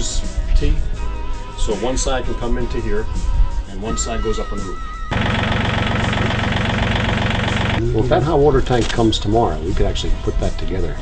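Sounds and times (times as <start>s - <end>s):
tractor engine idling: 5.1s - 8.2s.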